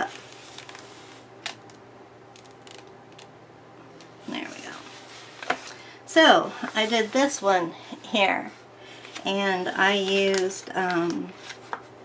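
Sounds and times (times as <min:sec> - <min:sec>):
faint paper rustles: 0:00.0 - 0:01.3
book pages handled: 0:00.0 - 0:01.8.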